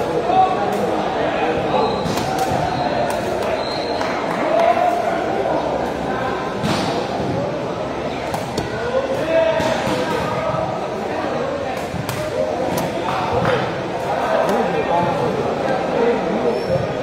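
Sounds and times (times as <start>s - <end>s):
crowd chatter in large hall: 0.0s - 17.0s.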